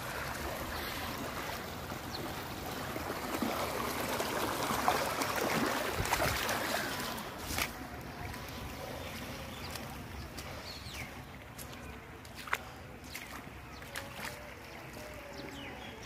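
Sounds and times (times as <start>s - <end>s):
floodwater rushing: 0.0s - 16.0s.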